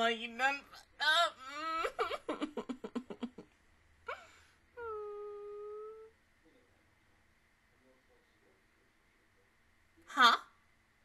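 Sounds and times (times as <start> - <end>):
woman whining: 1.0 - 2.2, 4.1 - 6.1
woman laughing: 1.0 - 3.5.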